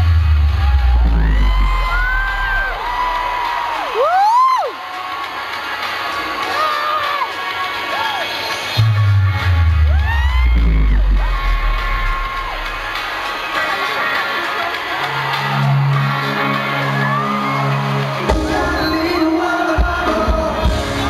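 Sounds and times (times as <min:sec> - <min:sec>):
crowd screaming and cheering: 0:00.0 - 0:21.0
loud arena music with bass: 0:00.0 - 0:21.0.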